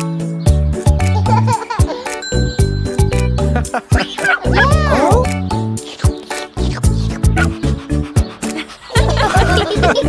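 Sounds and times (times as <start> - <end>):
children's song music: 0.0 - 10.0
cartoon puppy barking: 4.0 - 5.3.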